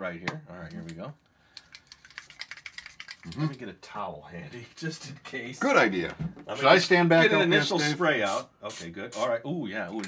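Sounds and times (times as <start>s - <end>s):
rapid irregular clicks and rattling: 0.6s - 3.7s.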